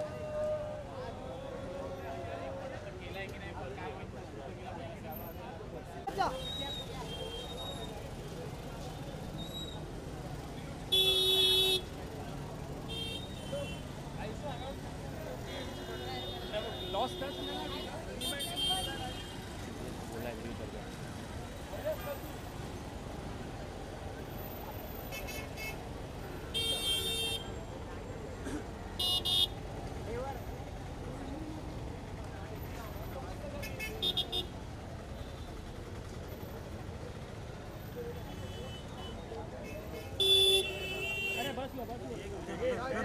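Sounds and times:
street traffic noise: 0.0 - 43.0
vehicle horns honking: 10.9 - 12.0, 12.9 - 13.9, 15.4 - 19.4, 26.5 - 27.6, 29.0 - 29.6, 33.6 - 34.5, 38.3 - 41.6.

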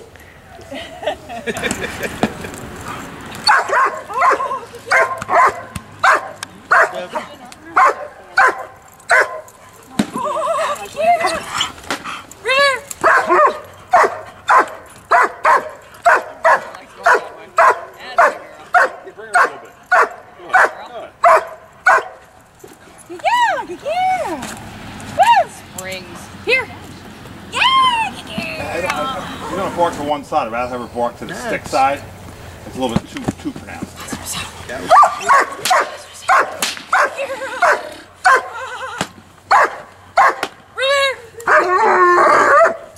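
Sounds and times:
dog barking: 3.4 - 9.5, 13.0 - 22.2, 34.9 - 38.5, 39.5 - 40.5, 42.4 - 42.9
dog whining yelps: 41.5 - 42.9.

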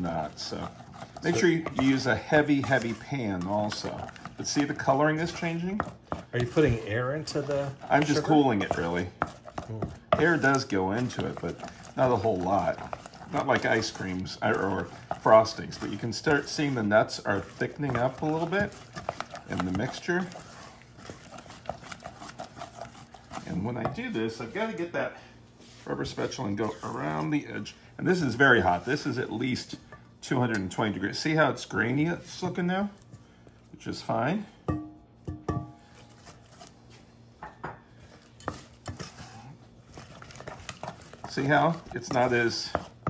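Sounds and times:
spoon beating candy in saucepan: 0.0 - 24.8, 25.8 - 43.0
spoon knocking against pan: 34.7 - 35.8.

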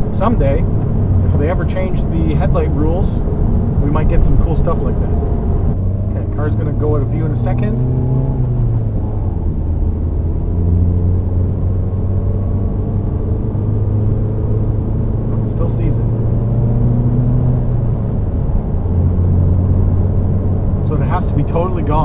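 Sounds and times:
car engine drone: 0.0 - 22.0
road and tyre noise: 0.0 - 22.0.

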